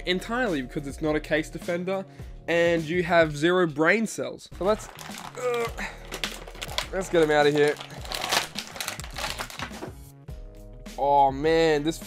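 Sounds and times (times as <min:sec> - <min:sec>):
plastic packaging crinkling: 0:04.6 - 0:09.9.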